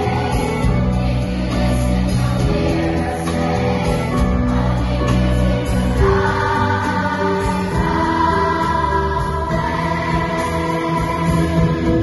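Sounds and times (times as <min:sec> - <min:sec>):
choir singing: 0:00.0 - 0:12.0
small band playing: 0:00.0 - 0:12.0.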